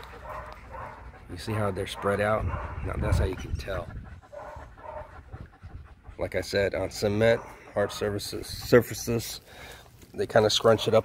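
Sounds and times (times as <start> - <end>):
dog panting: 0.0 - 11.0.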